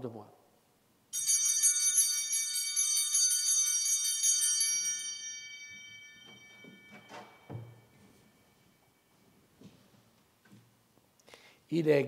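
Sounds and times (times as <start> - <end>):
small handbells shaken: 1.2 - 6.9.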